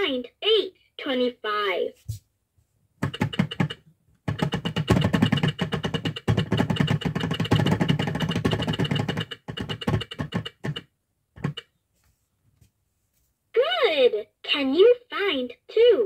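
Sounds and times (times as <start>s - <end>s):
toy clock hands clicking: 3.0s - 11.6s.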